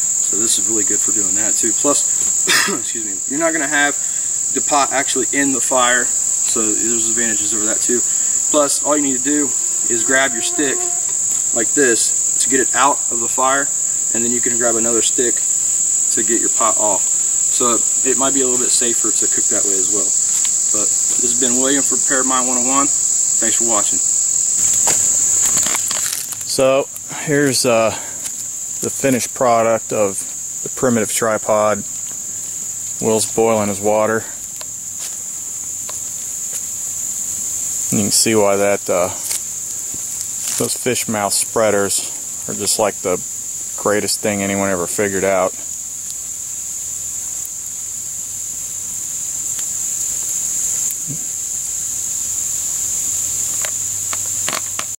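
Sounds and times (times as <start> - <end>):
campfire crackling: 0.0 - 54.9
high-pitched insect chorus: 0.0 - 54.9.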